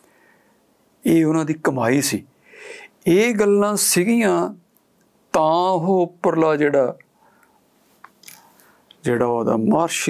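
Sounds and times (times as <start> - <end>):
soft breath: 2.4 - 3.0, 7.2 - 8.9.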